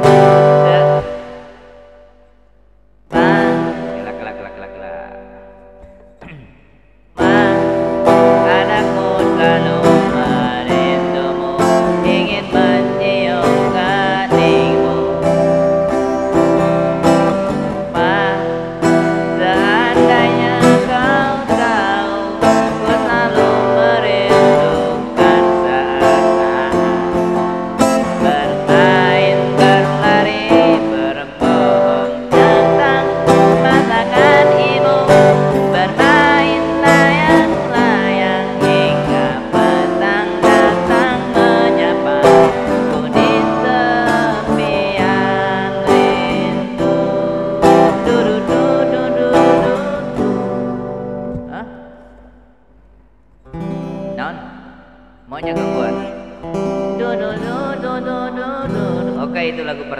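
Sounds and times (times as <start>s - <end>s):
man singing: 0.0s - 1.9s, 3.1s - 50.7s, 51.4s - 51.9s, 54.1s - 54.6s, 55.3s - 59.9s
acoustic guitar strumming: 0.0s - 59.9s.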